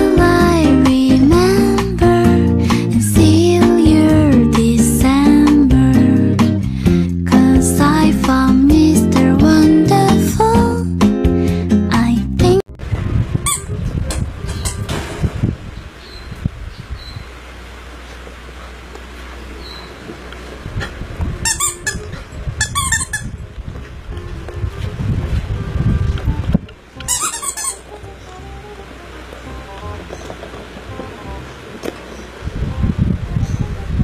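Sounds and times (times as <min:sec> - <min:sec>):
background music: 0:00.0 - 0:12.6, 0:26.9 - 0:30.2
low thumps: 0:12.8 - 0:17.0
short high squeak: 0:19.6 - 0:20.0, 0:21.4 - 0:23.3, 0:27.0 - 0:27.9.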